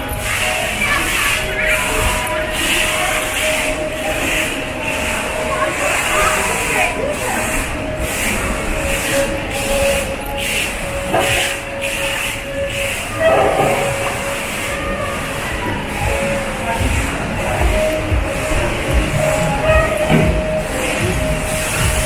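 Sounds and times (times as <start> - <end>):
background music: 0.0 - 22.0
murmur of voices: 0.0 - 22.0.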